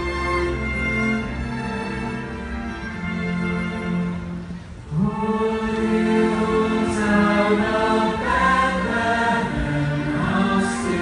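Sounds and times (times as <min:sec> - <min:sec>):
large choir singing chords: 0:04.0 - 0:11.0.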